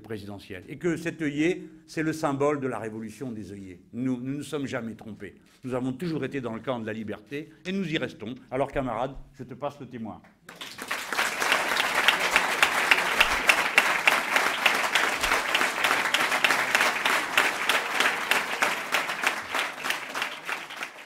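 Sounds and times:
audience applauding: 10.5s - 21.0s.

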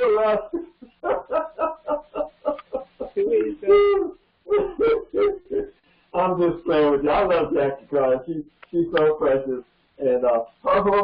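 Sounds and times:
man laughing heartily: 0.0s - 5.7s.

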